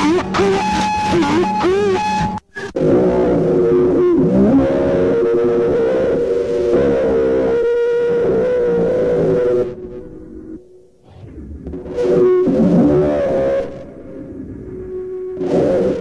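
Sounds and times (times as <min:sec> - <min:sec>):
dense drone of held tones: 0:00.0 - 0:16.0.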